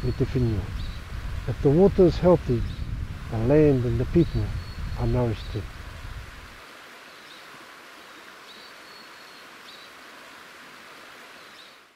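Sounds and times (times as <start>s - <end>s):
steady soft hiss: 0.0s - 11.9s
faint bird chirps: 4.2s - 5.6s, 8.1s - 10.0s.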